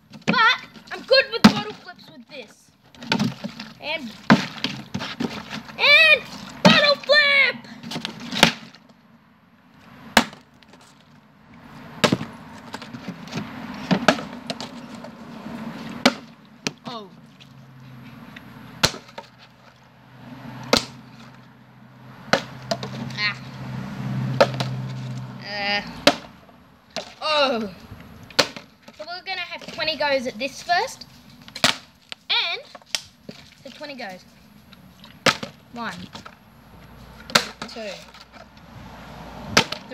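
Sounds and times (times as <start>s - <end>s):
plastic bottles landing on concrete: 0.1s - 2.0s, 3.0s - 7.1s, 7.7s - 8.9s, 12.0s - 15.1s, 16.0s - 16.8s, 18.8s - 19.3s, 20.7s - 21.0s, 22.3s - 23.2s, 24.4s - 24.9s, 26.0s - 27.2s, 28.3s - 29.0s, 31.4s - 33.4s, 35.1s - 36.4s, 37.2s - 38.5s, 39.5s - 39.9s.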